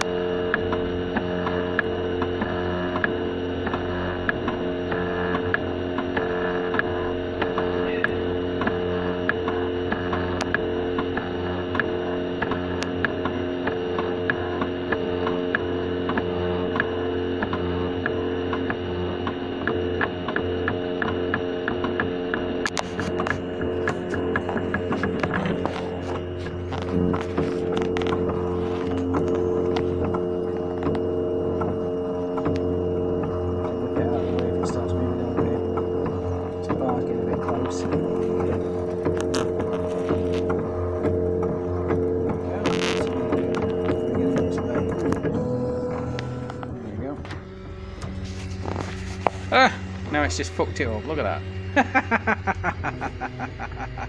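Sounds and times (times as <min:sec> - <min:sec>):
print head ticks: 0:00.0 - 0:48.3
cooling fan hum: 0:00.0 - 0:54.0
stepper motors whining: 0:00.0 - 0:54.0.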